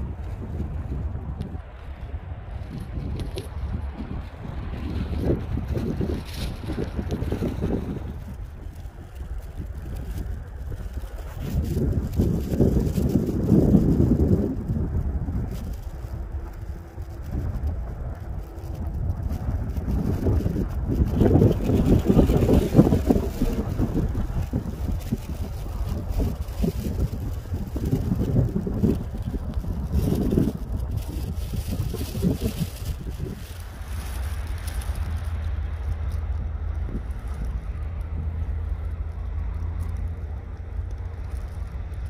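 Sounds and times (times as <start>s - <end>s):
wind buffeting the microphone: 0.0s - 42.0s.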